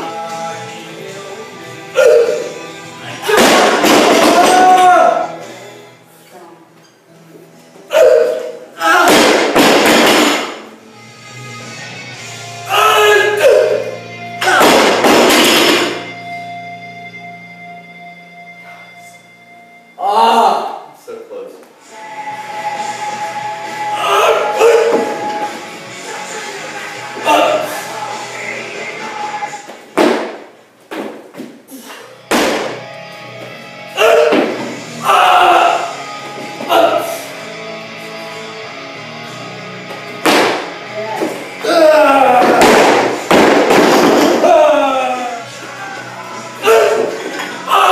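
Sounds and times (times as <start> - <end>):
music playing: 0.0 - 29.9, 32.0 - 47.9
guitar background music: 32.2 - 43.4.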